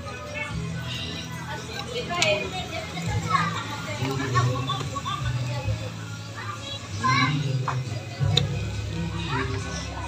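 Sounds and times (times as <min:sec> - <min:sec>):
background music: 0:00.0 - 0:10.0
children chattering: 0:00.0 - 0:10.0.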